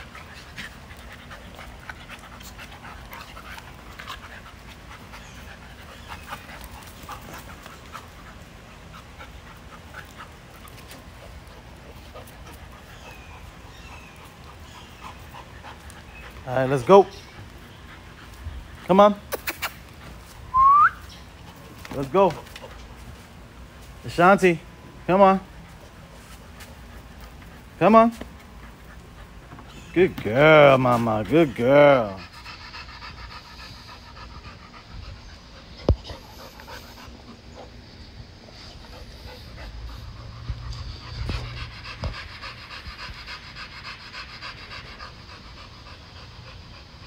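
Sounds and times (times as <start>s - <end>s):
dog panting: 0.0s - 20.5s, 21.2s - 47.0s
person whistling: 20.5s - 21.0s.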